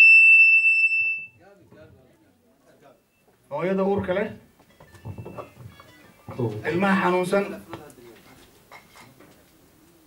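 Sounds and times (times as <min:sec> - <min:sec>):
microphone feedback whistle: 0:00.0 - 0:01.4, 0:04.8 - 0:05.8.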